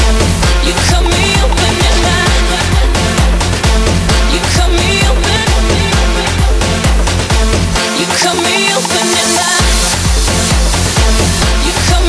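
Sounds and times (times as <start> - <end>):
steady kick drum: 0.0 - 7.8, 9.6 - 12.0
electronic dance music: 0.0 - 12.0
heavy bass line: 0.0 - 12.0.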